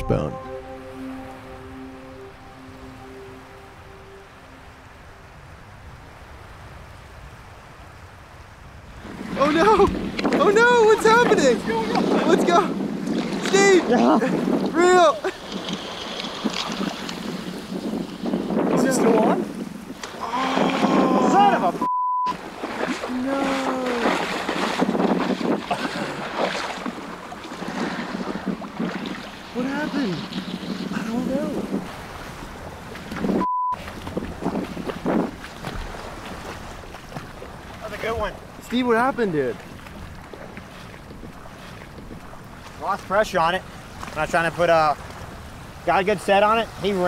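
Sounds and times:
shallow water: 0:00.0 - 0:47.0
wind: 0:00.0 - 0:47.0
raised voices calling out: 0:20.2 - 0:21.9, 0:23.1 - 0:24.2
censor bleeps: 0:21.8 - 0:22.4, 0:33.4 - 0:33.8.

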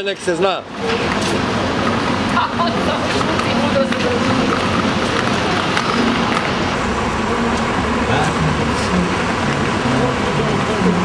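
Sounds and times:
buses and cars passing: 0:00.0 - 0:11.0
people talking: 0:02.3 - 0:06.4, 0:07.4 - 0:09.2.

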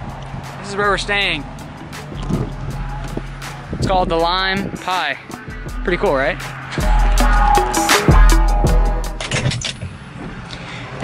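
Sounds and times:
background music: 0:00.0 - 0:09.3
steady outdoor rushing noise: 0:00.0 - 0:11.0.

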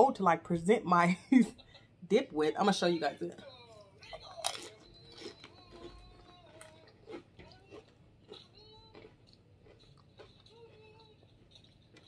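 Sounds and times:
chewing chip: 0:04.0 - 0:12.0.

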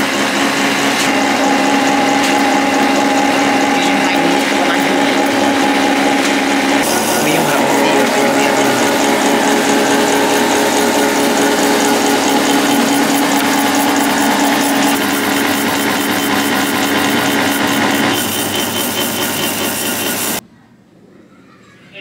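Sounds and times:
noodle machine motor humming: 0:00.0 - 0:20.4.

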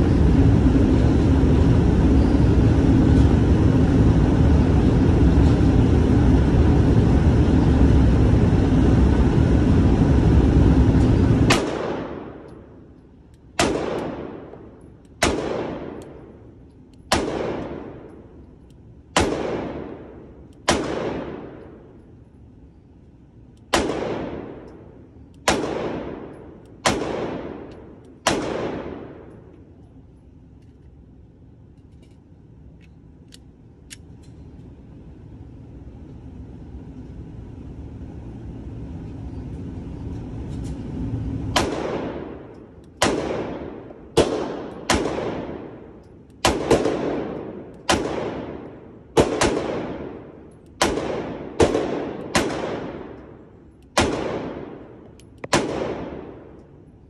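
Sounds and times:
pistol shots echoing indoors: 0:10.5 - 0:29.9, 0:41.5 - 0:57.0.

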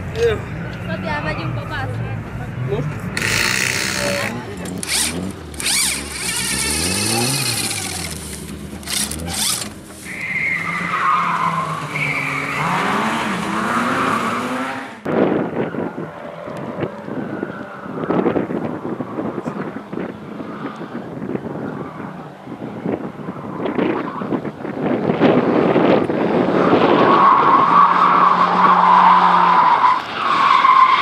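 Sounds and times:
rally car engine revving: 0:01.4 - 0:31.0
tyre squeal: 0:03.2 - 0:08.2, 0:08.8 - 0:13.0
wind on microphone: 0:15.0 - 0:27.8.

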